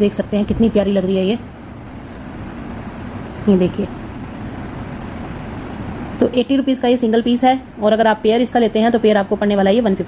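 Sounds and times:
steady rushing noise: 0:00.0 - 0:10.0.

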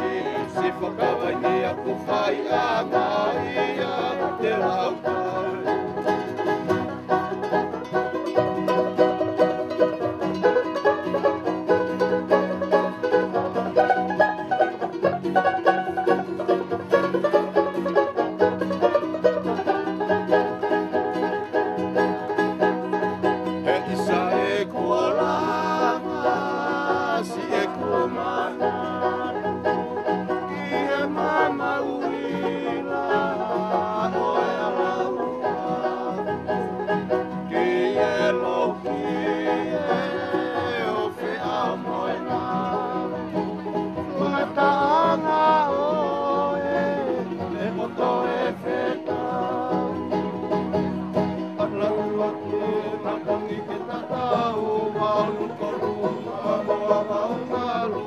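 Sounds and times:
men singing: 0:00.0 - 0:08.2, 0:23.4 - 0:50.6, 0:51.6 - 0:58.0
string band playing: 0:00.0 - 0:58.0
strummed banjo: 0:00.0 - 0:58.0.

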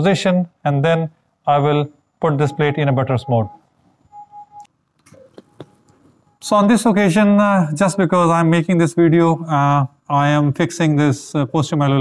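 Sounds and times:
electronic beep: 0:02.3 - 0:06.4.

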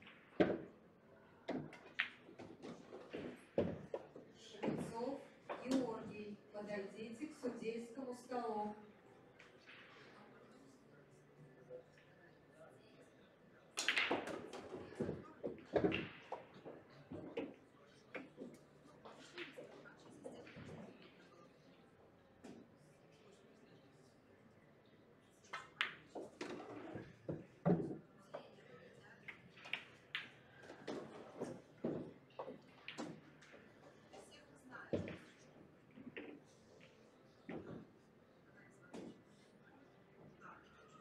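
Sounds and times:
pool balls clicking and knocking: 0:00.0 - 0:00.8, 0:01.4 - 0:06.0, 0:13.8 - 0:21.1, 0:25.4 - 0:28.4, 0:29.2 - 0:34.2, 0:34.9 - 0:38.0.

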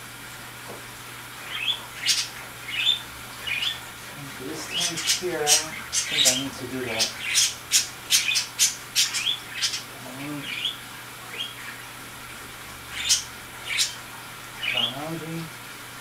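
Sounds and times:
bird chirping and squawking: 0:01.4 - 0:12.0, 0:12.9 - 0:15.1.

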